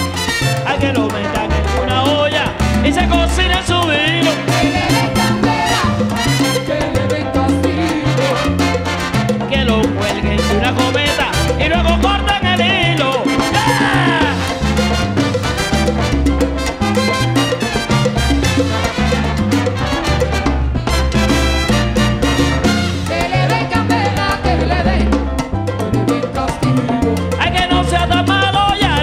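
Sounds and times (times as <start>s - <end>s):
salsa band playing: 0.0s - 29.0s.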